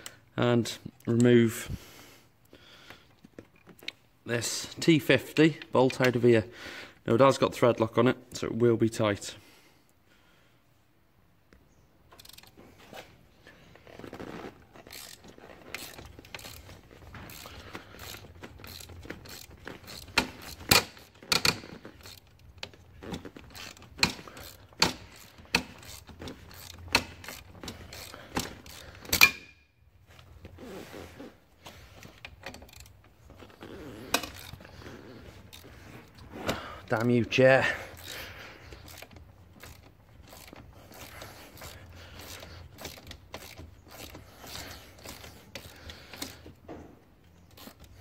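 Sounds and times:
hand ratchet clicking: 12.1s - 12.6s, 13.9s - 29.6s, 31.7s - 46.6s, 47.4s - 48.0s.

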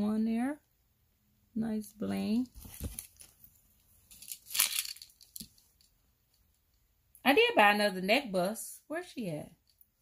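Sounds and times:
jewelry packaging crinkling: 2.4s - 6.0s.

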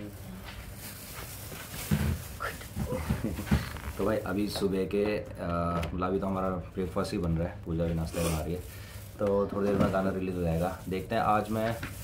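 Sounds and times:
laughter-like vocal sounds: 2.8s - 3.6s.

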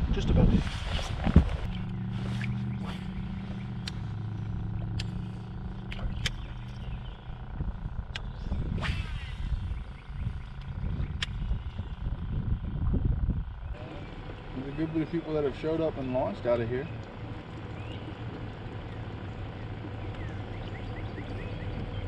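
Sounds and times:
motor humming: 0.0s - 22.0s
sharp clicks and knocks: 4.8s - 6.8s.

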